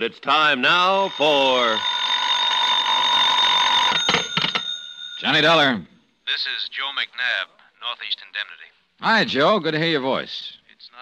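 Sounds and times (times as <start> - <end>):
telephone bell ringing: 0.6 - 5.7.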